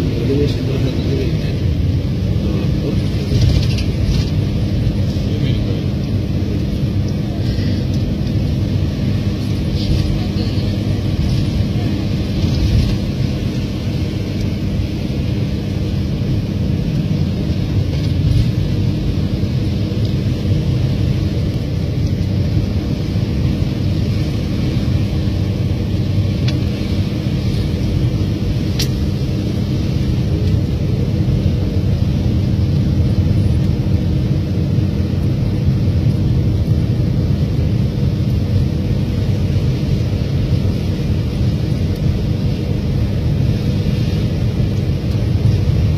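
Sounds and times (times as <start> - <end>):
vehicle engine and road noise: 0.0 - 45.9.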